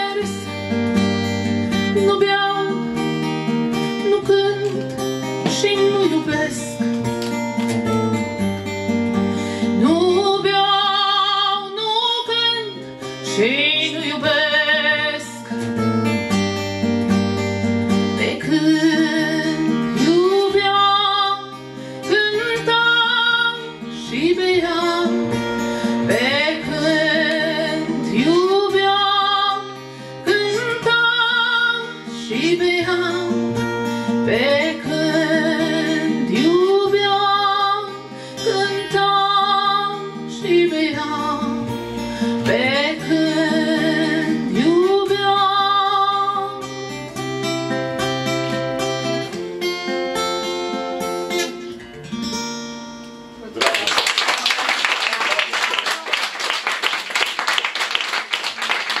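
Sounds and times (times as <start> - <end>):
woman singing: 0.0 - 0.7, 1.9 - 3.2, 3.8 - 6.9, 9.6 - 15.6, 18.2 - 46.8
strummed acoustic guitar: 0.0 - 53.6.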